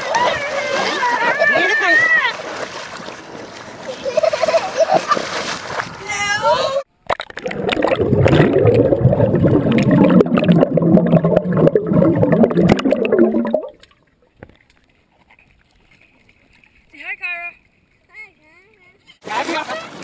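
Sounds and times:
water splashing and gurgling: 7.1 - 14.7.

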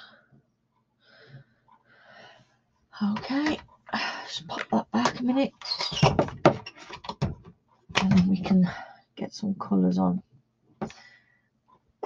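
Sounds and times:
soft hissy breathing: 1.0 - 2.6, 10.8 - 11.6.

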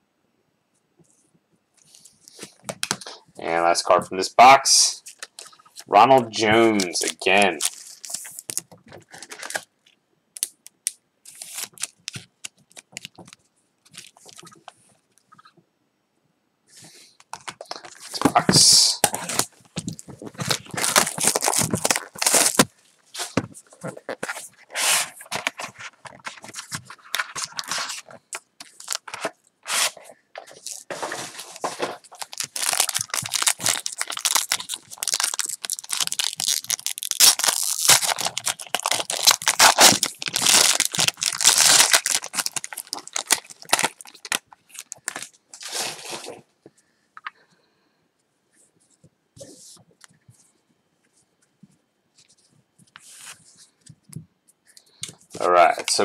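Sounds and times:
plastic wrap crinkling and tearing: 5.0 - 9.7, 10.4 - 14.6, 17.4 - 46.4.

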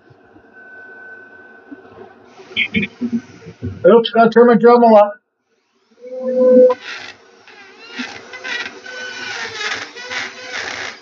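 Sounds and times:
rotary tool grinding wood: 6.8 - 11.0.

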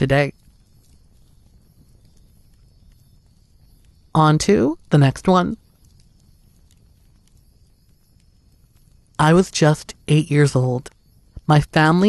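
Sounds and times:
faint low rumble: 0.0 - 12.0
faint ticks: 0.1 - 9.2.

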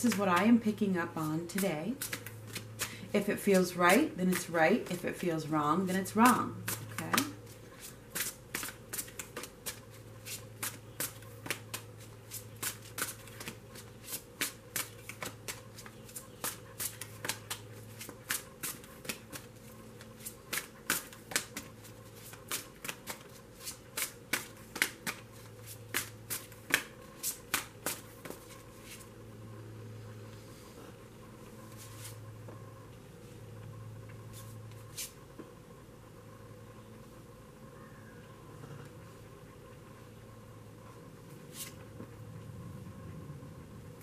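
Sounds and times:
cards shuffled by hand: 0.0 - 3.2, 6.6 - 29.1.

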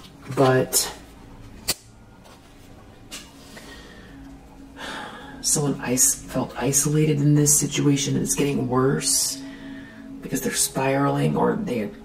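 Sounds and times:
woman speaking: 0.3 - 1.0, 5.4 - 9.5, 10.2 - 12.0
woman breathing in: 3.4 - 5.4, 9.4 - 10.2.

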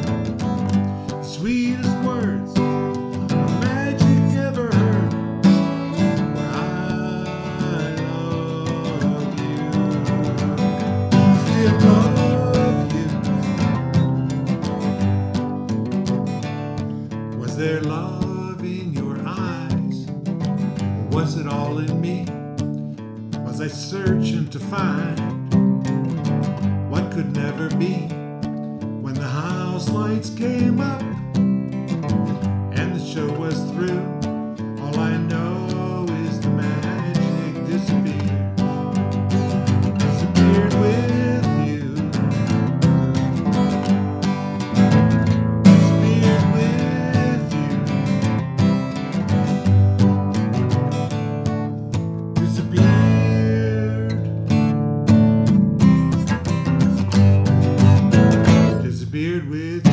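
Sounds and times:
man singing: 0.0 - 14.8, 17.3 - 22.7, 23.4 - 25.6, 26.8 - 28.4, 29.0 - 49.5, 51.0 - 54.8, 56.4 - 59.9
acoustic guitar strumming: 0.0 - 59.9.

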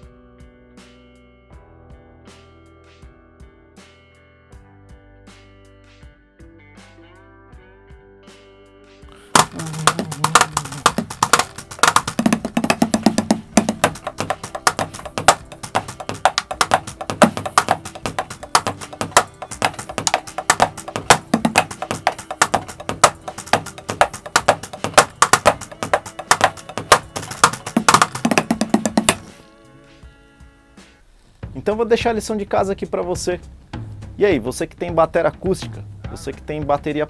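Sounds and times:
electronic drum kit playing: 9.3 - 29.3.

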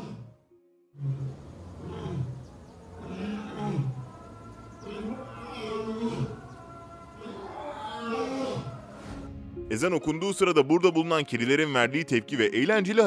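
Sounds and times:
lion calling: 1.0 - 9.0.

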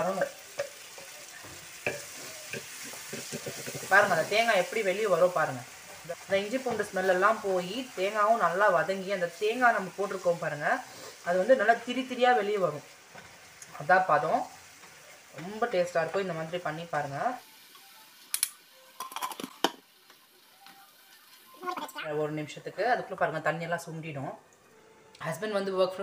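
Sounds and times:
food sizzling in a pan: 0.0 - 26.0
woman speaking: 25.2 - 26.0.

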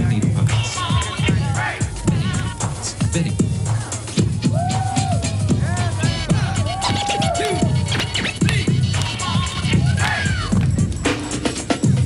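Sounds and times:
hip hop drum beat: 0.0 - 12.0
turntable scratching: 5.7 - 10.6.

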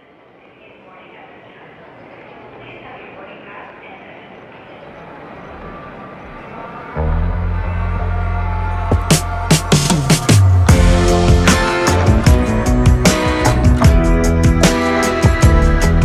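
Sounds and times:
pop-rock band with loud bass: 7.6 - 16.0.

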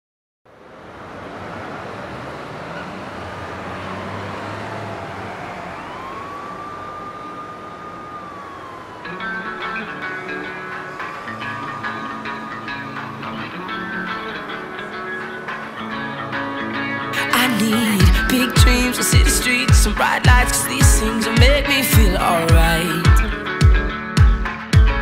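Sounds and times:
street noise hiss: 0.5 - 16.8
siren wailing: 0.8 - 23.6
guitar music: 7.4 - 25.0.

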